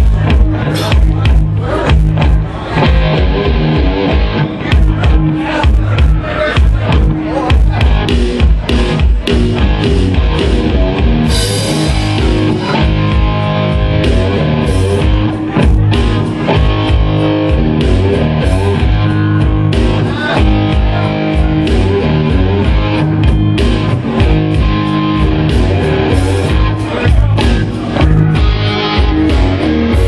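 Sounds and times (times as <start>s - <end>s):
bass guitar: 0.0s - 30.0s
drum kit: 0.0s - 30.0s
electric guitar: 0.0s - 30.0s.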